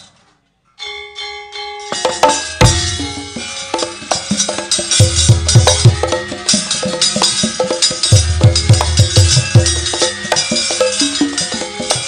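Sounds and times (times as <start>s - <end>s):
gamelan note ringing: 0.7s - 12.0s.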